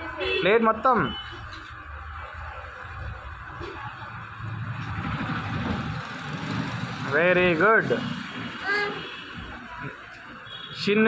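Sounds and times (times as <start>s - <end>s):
vehicles rumbling by: 0.0s - 11.0s.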